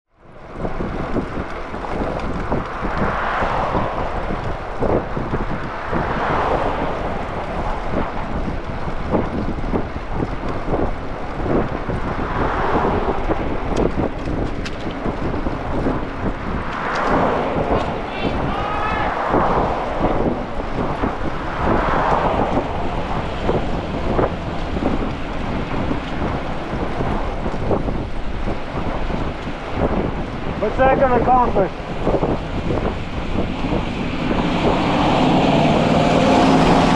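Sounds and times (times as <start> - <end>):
passing traffic: 0.1 - 36.9
wind buffeting microphone: 0.1 - 36.9.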